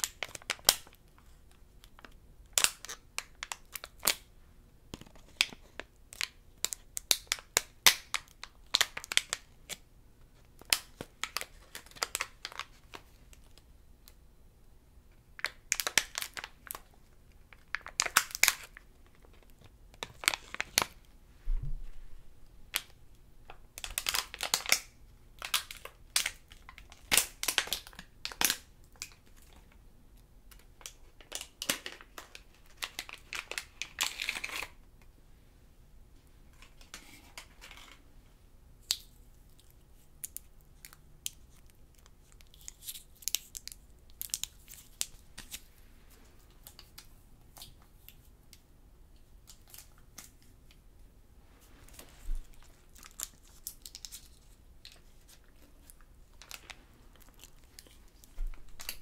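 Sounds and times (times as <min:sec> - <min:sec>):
candy wrapper crinkling and tearing: 0:00.0 - 0:04.3, 0:05.0 - 0:09.8, 0:10.4 - 0:14.2, 0:15.3 - 0:21.0, 0:22.7 - 0:29.7, 0:30.5 - 0:34.8, 0:38.8 - 0:45.7, 0:49.3 - 0:50.6, 0:51.9 - 0:59.0.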